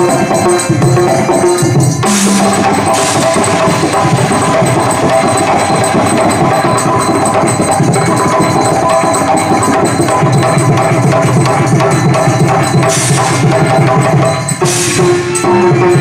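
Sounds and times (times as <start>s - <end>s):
hand drums and tabla playing: 0.0s - 16.0s.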